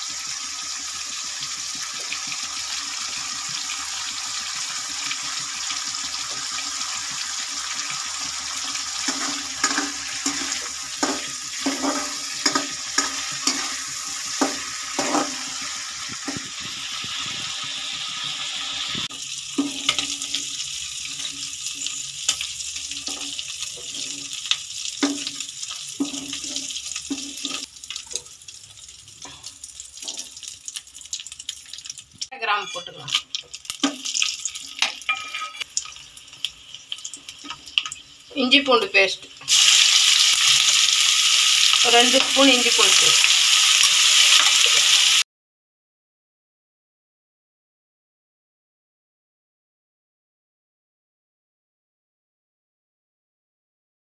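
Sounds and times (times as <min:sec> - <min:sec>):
prawns sizzling in hot oil: 0:00.0 - 0:45.3
ladle clicking and scraping pan: 0:09.0 - 0:15.5, 0:21.1 - 0:28.3.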